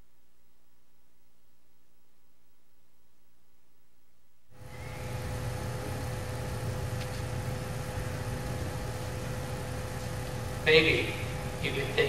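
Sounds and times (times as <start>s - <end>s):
steady hum with constant tone: 0.0s - 12.0s.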